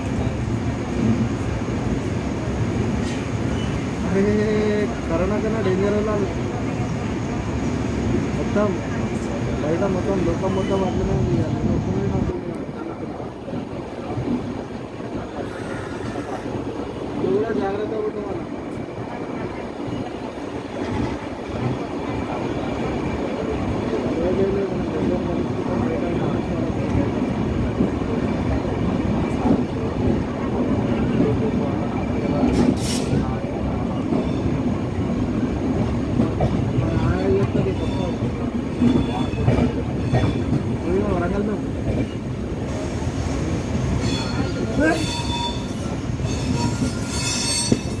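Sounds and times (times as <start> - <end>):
train wheels rumbling on rail: 0.0 - 48.0
brief wheel squeals: 15.4 - 16.5, 44.0 - 48.0.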